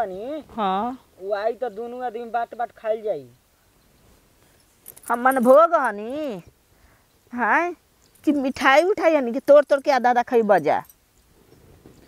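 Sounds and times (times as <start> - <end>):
woman talking: 0.5 - 1.0, 5.1 - 6.5, 7.3 - 10.9.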